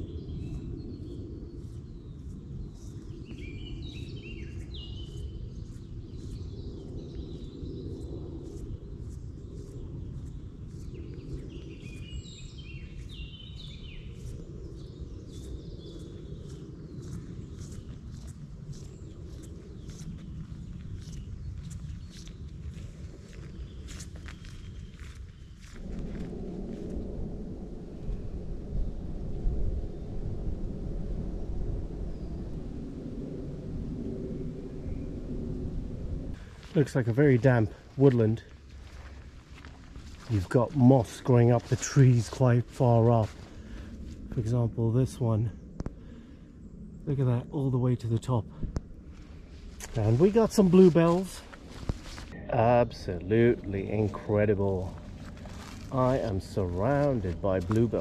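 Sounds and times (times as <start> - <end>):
small birds chirping: 0.0 - 25.8
footsteps on woodland path: 0.0 - 27.0, 36.3 - 44.6, 49.1 - 52.8, 53.5 - 58.0
wind rumble on microphone: 0.0 - 58.0.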